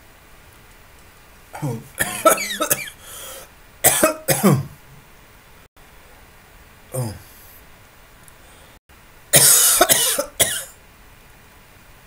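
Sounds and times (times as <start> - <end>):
man coughing harshly: 1.6 - 3.0, 3.8 - 4.8, 9.4 - 10.7.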